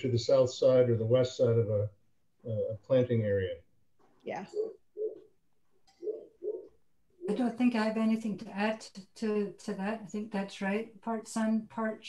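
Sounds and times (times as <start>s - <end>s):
dove cooing: 4.4s - 5.3s, 6.0s - 7.4s.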